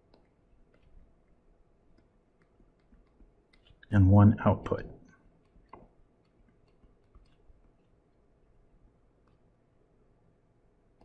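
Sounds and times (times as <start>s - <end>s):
stylus tapping on tablet screen: 1.9s - 3.8s.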